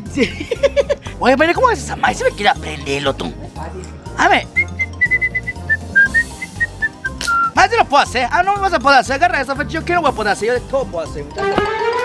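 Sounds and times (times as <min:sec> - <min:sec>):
background music with low beat: 0:00.0 - 0:12.0
high whistled notes: 0:04.4 - 0:07.6.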